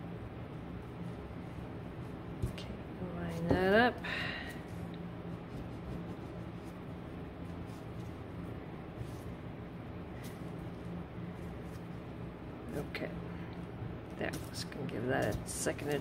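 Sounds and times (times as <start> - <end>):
low room hum: 0.0 - 16.0.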